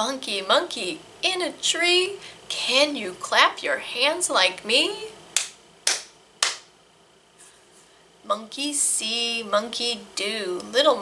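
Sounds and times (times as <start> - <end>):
person clapping hands: 5.4 - 6.7.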